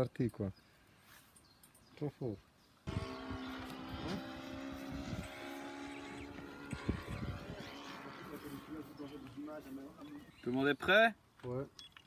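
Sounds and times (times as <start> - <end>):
drone motors whining: 2.9 - 9.6.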